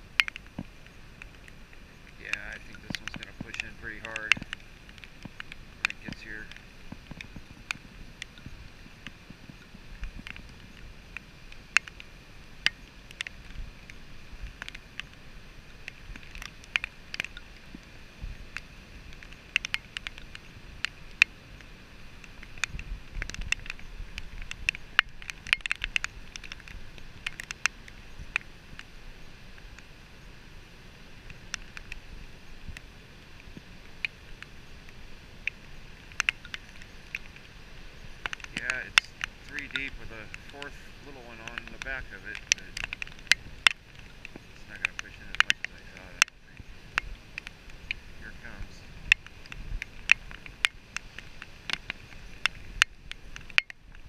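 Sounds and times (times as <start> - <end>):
raindrops hitting camera: 0.0 - 54.0.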